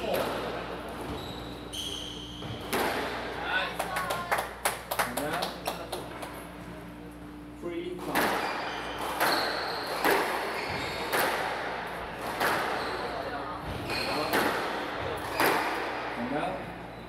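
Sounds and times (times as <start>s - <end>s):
squash ball striking rackets and walls: 0.0s - 3.5s, 8.0s - 16.4s
shoes squeaking on wooden floor: 1.0s - 2.7s, 8.4s - 11.1s, 12.7s - 14.3s.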